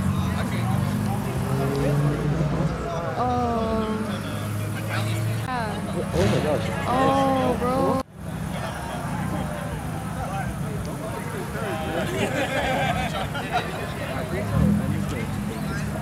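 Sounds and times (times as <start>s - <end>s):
car engines idling: 0.0s - 16.0s
indistinct voices talking: 0.0s - 16.0s.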